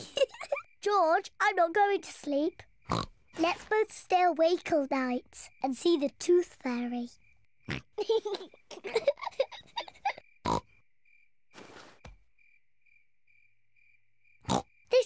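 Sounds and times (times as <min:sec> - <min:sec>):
children giggling: 0:00.0 - 0:00.8, 0:07.9 - 0:10.2
cricket chirping: 0:00.0 - 0:15.0.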